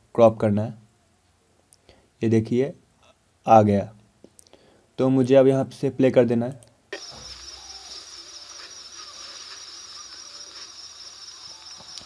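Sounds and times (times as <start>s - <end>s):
crickets chirping: 7.0s - 12.0s.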